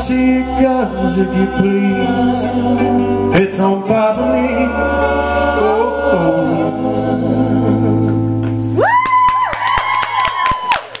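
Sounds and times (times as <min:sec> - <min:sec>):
person singing: 0:00.0 - 0:08.3
audience clapping: 0:08.8 - 0:11.0.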